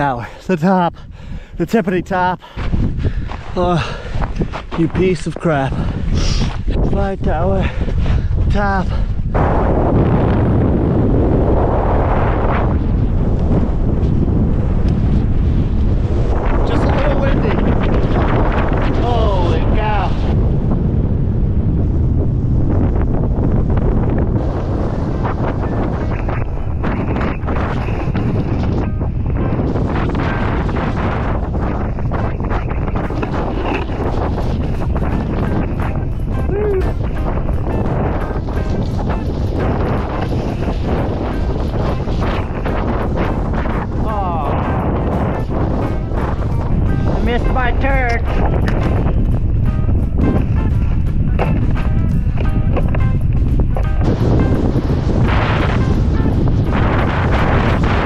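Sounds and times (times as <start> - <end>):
wind buffeting microphone: 0.0 - 58.0
snowboard sliding over snow: 24.0 - 46.9, 52.9 - 58.0.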